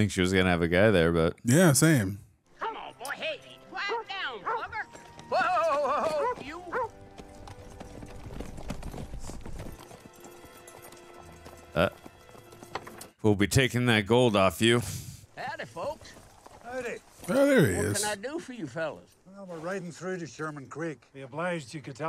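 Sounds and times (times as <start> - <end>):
film music score: 1.5 - 14.7
hooves clip-clopping: 3.8 - 13.2, 15.4 - 18.1.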